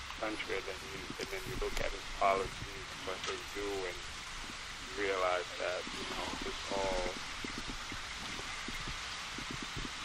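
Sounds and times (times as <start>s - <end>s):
faint crackles: 0.0s - 10.0s.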